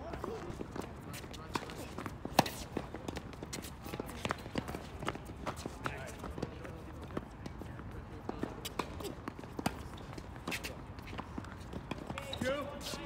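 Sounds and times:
shoes scuffing on court: 0.0s - 7.6s, 8.2s - 13.0s
tennis ball hits and bounces: 0.2s - 6.6s, 8.2s - 12.6s.

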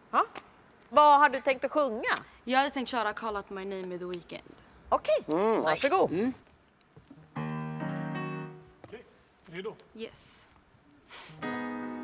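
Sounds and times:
electric keyboard chord: 7.2s - 8.7s, 11.4s - 12.0s.

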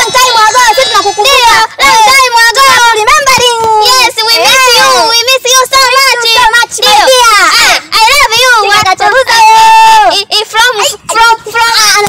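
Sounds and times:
high-pitched voices chattering: 0.0s - 12.0s.

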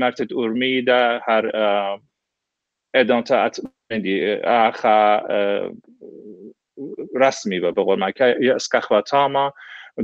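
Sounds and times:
man talking: 0.0s - 2.0s, 3.0s - 10.0s.

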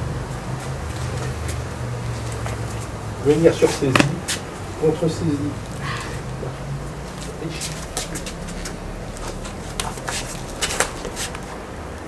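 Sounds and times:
steady low hum: 0.0s - 12.0s
clothing rustling: 5.6s - 11.6s
feet scuffing on stone: 7.1s - 11.4s.

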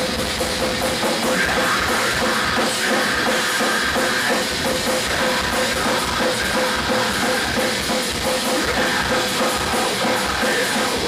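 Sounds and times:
drum kit beating: 0.0s - 11.0s
metal band playing: 0.0s - 11.0s.

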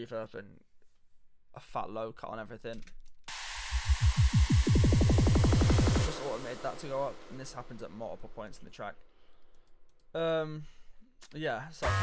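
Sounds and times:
drum and bass build-up: 3.3s - 8.6s
white-noise riser: 3.3s - 8.6s
pitch-dropping low hits: 3.7s - 8.7s.

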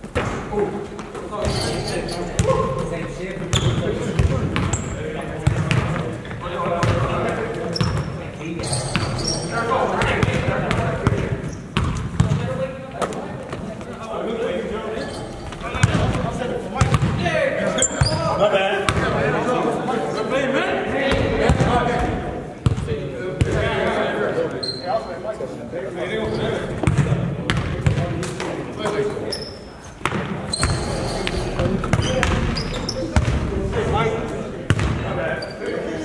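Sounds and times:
indistinct voices: 0.0s - 7.8s, 13.2s - 22.3s, 30.3s - 36.0s
basketball bouncing on wooden floor: 3.5s - 6.0s, 11.8s - 12.4s, 30.0s - 33.5s.

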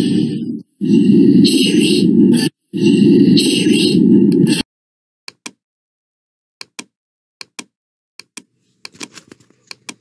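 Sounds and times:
distorted overlapping soundtracks: 0.0s - 4.6s.

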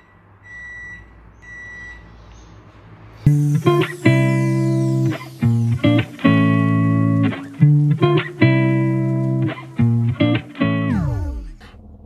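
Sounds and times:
high electronic beeps: 3.3s - 7.6s
low hum: 3.3s - 9.3s, 10.9s - 12.0s.

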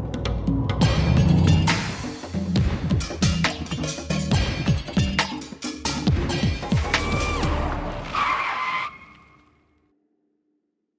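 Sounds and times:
high tyre screech: 6.9s - 9.4s.

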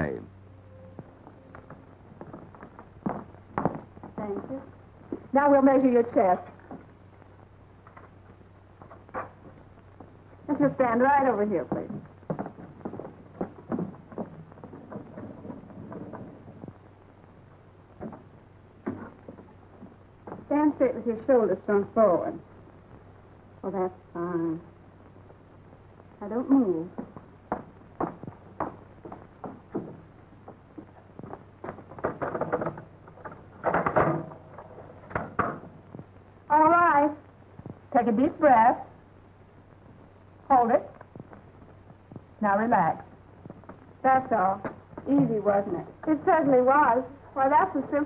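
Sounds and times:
old film soundtrack hum and hiss: 0.0s - 48.0s
footsteps on hard floor: 1.0s - 5.3s, 11.6s - 16.8s, 18.9s - 20.5s, 26.9s - 32.7s.

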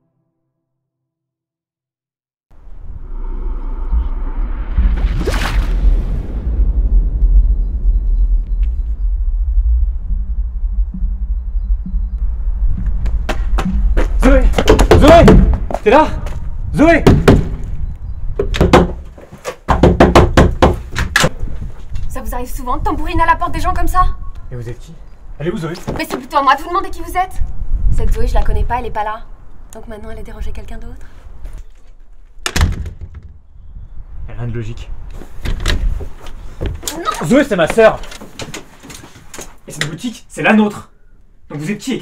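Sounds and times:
door clicks and knocks: 18.4s - 19.0s
hands pounding on glass door: 19.7s - 20.8s.

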